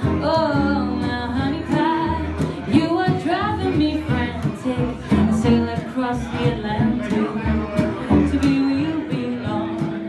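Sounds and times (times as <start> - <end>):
acoustic guitars: 0.0 - 10.0
upright double bass: 0.0 - 10.0
woman singing with vibrato: 0.0 - 10.0.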